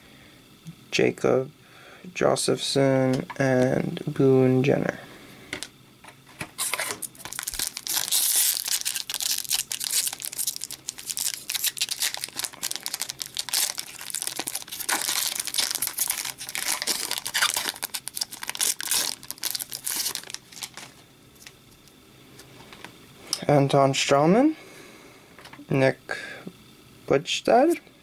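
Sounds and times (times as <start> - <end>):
foil wrapper crinkling and tearing: 6.6 - 21.6.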